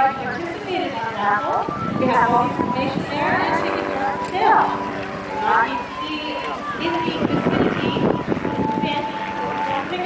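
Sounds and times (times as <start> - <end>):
announcer over public address: 0.0 - 10.0
arena crowd: 0.0 - 10.0
thin steady ringing tone: 2.2 - 10.0.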